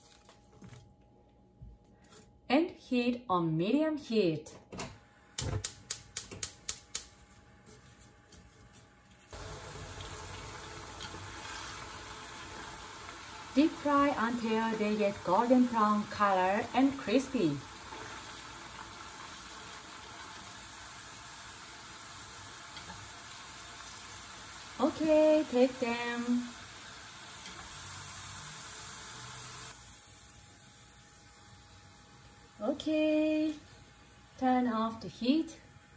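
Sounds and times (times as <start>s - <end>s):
oil deep-frying fizz: 9.3s - 32.6s.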